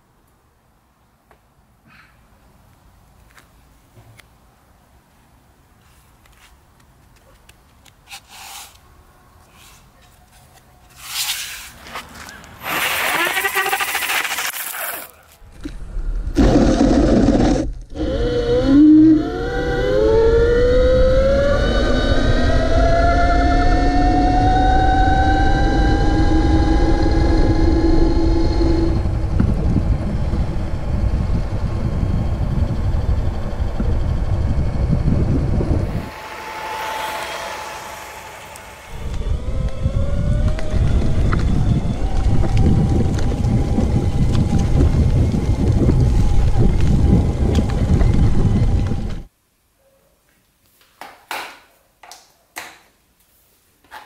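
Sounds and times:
heavy wind: 0:15.4 - 0:49.3
electric motor whining: 0:16.4 - 0:49.3.

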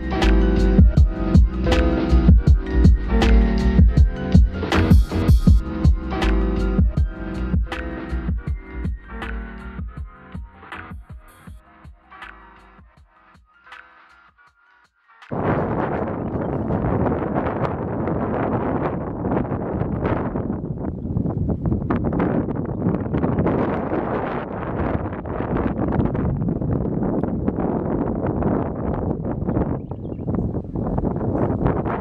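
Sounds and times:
wind gusting on microphone: 0:00.0 - 0:10.8, 0:15.3 - 0:32.0.

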